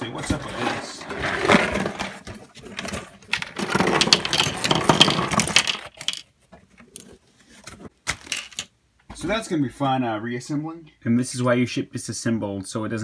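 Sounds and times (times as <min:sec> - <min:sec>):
plastic bricks clicking and rattling: 0:02.6 - 0:06.3.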